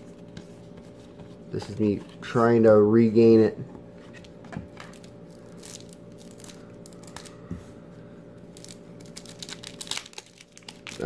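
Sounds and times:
faint steady hum: 0.0s - 11.0s
wrapper crinkling and tearing: 4.8s - 7.4s, 8.5s - 11.0s.

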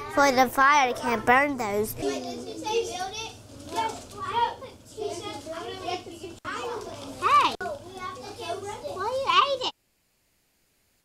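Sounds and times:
children chattering: 0.0s - 9.7s.

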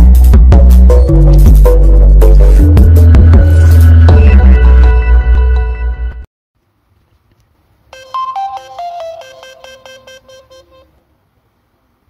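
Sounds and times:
loud intro music: 0.0s - 6.2s
electronic startup chime: 8.0s - 10.8s.

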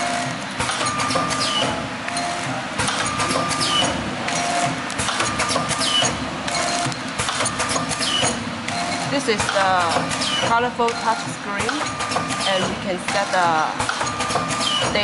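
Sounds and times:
machine clicks: 0.0s - 15.0s
packing machine running: 0.0s - 15.0s.

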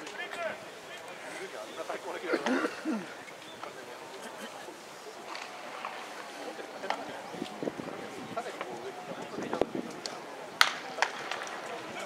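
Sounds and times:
spectators chatting: 0.0s - 12.0s
steady stadium hum: 0.0s - 12.0s.

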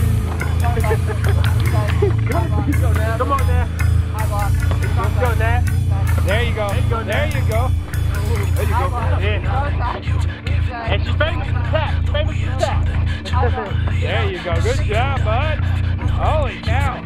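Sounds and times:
men shouting and yelling: 0.0s - 17.0s
steady low hum: 0.0s - 17.0s.

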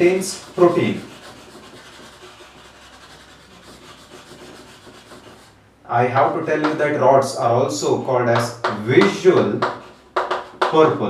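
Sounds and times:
chalk scraping on chalkboard: 0.0s - 5.6s, 6.2s - 6.8s, 8.4s - 11.0s.

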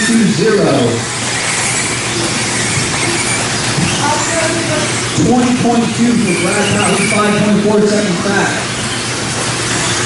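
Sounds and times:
rc car motors and tyres: 0.0s - 10.0s.

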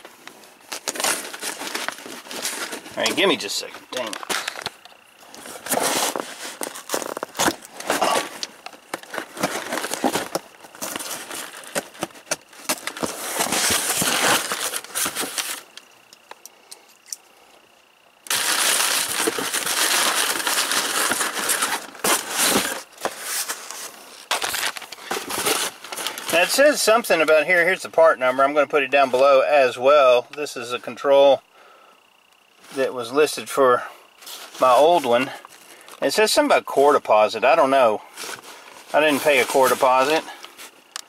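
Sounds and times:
cardboard tearing and rustling: 0.6s - 3.2s, 3.9s - 15.7s, 18.3s - 26.4s.

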